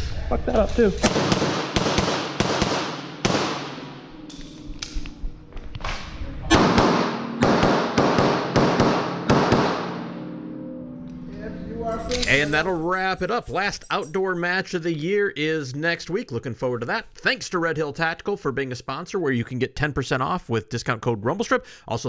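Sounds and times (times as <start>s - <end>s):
pistol shots echoing indoors: 1.0s - 5.1s, 6.5s - 10.4s.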